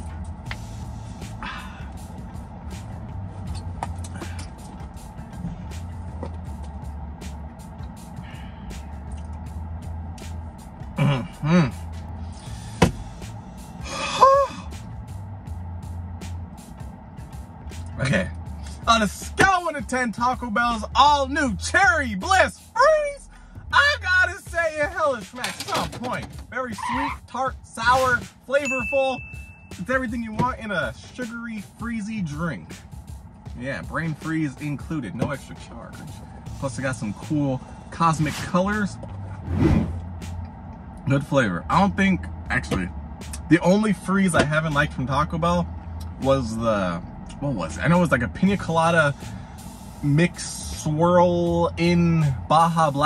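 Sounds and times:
background music: 0.0s - 53.0s
low steady hum: 0.0s - 53.0s
man gasping and groaning: 1.3s - 2.0s, 11.0s - 12.9s, 13.8s - 14.8s.

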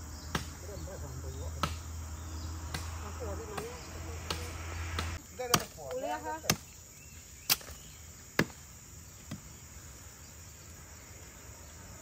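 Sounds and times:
machete chopping: 0.2s - 0.8s, 1.5s - 1.9s, 2.6s - 6.8s, 7.4s - 8.6s, 9.2s - 9.5s.

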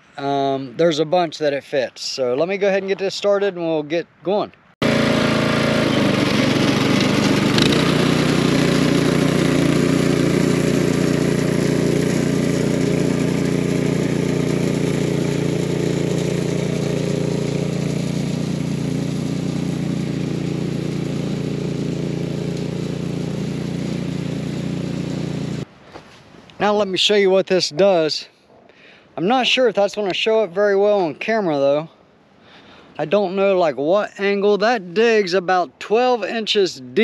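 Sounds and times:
tiller engine running: 4.8s - 25.7s.

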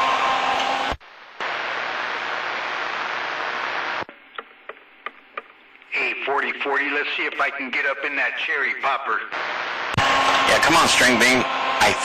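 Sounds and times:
radio static hiss: 0.9s - 4.8s, 5.9s - 12.0s.

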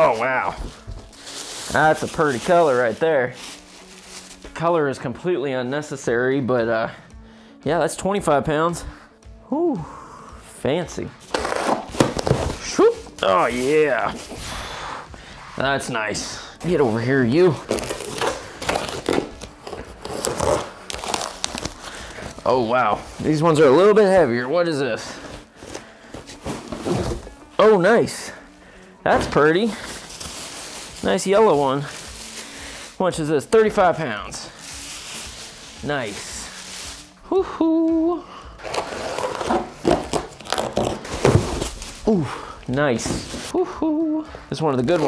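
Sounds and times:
cardboard and tape tearing: 0.0s - 4.5s, 11.2s - 14.6s, 16.7s - 22.5s, 25.4s - 27.4s, 38.6s - 42.3s, 42.9s - 43.6s
cardboard box rustling and scraping: 25.7s - 27.4s, 38.6s - 42.1s.

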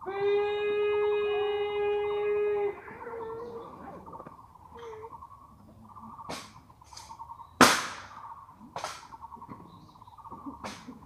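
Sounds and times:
rifle being slapped: 7.6s - 8.1s.

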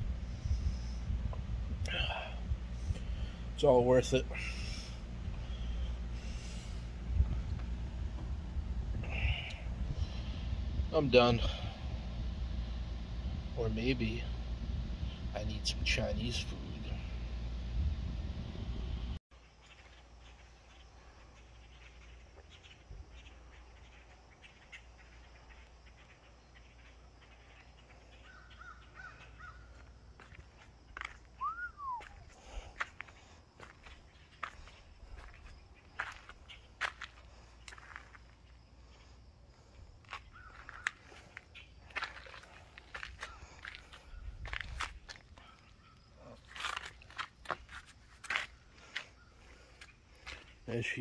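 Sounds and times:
faint low rumble: 0.0s - 19.2s
bird calls: 19.4s - 39.1s, 40.1s - 47.1s, 48.2s - 51.0s
rising and falling chirp: 31.3s - 32.3s.

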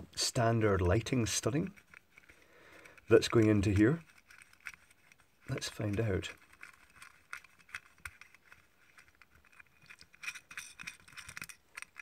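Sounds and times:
metal parts scraping and clicking: 1.2s - 12.0s.

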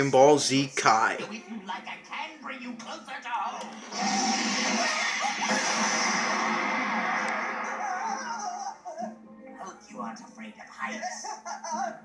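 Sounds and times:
anime music: 3.6s - 9.6s
loud rushing sound effect: 3.8s - 8.4s.

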